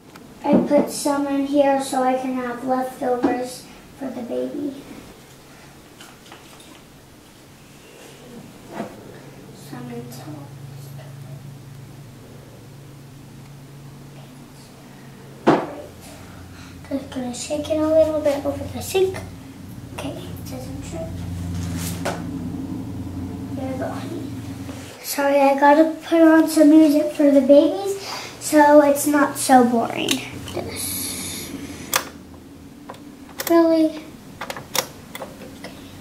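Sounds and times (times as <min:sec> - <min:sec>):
low hum: 0:06.8 - 0:36.0.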